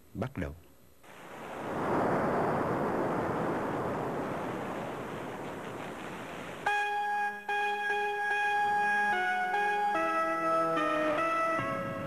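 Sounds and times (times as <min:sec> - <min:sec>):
steady rushing noise: 0:01.1 - 0:06.7.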